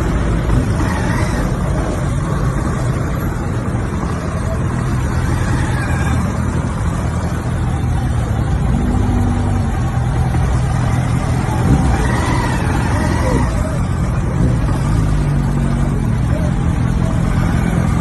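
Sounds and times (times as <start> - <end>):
traffic engines rumbling: 0.0 - 18.0.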